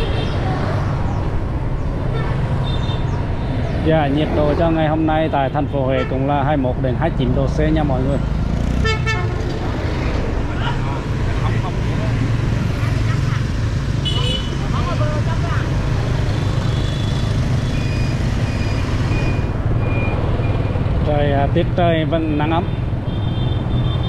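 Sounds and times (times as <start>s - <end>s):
traffic noise: 0.0s - 24.0s
passers-by voices: 9.4s - 16.6s.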